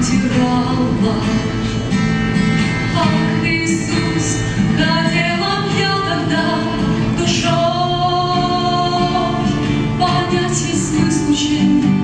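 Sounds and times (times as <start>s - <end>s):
woman singing: 0.0s - 1.6s, 2.9s - 12.0s
acoustic guitar: 0.0s - 12.0s.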